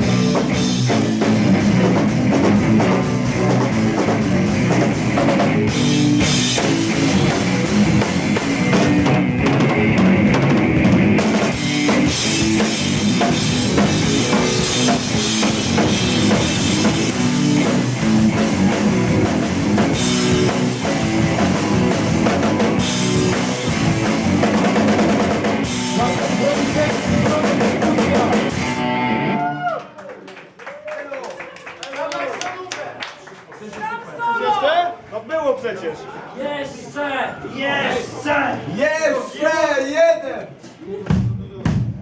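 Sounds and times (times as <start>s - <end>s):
drum kit: 0.0s - 29.5s, 40.6s - 42.0s
bass guitar: 0.0s - 29.8s
electric guitar: 0.0s - 29.8s.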